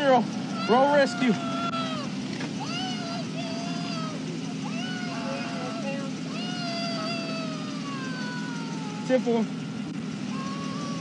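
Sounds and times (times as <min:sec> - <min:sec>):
vehicle engine idling: 0:00.0 - 0:11.0
person wailing: 0:00.6 - 0:09.4, 0:10.3 - 0:11.0.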